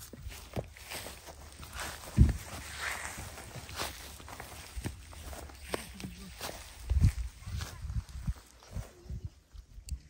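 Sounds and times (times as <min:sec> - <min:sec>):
footsteps on grassy stony ground: 0:00.0 - 0:09.8.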